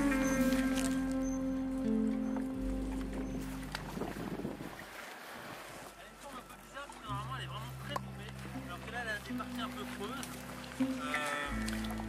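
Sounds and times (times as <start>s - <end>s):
water moving around kayak: 0.0s - 12.0s
wind on microphone: 3.1s - 5.8s.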